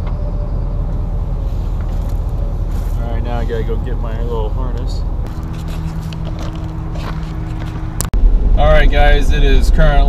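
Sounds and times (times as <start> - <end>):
truck engine idling: 0.0 - 8.1
road rumble inside truck cab: 0.0 - 10.0
footsteps on gravel: 1.7 - 8.1.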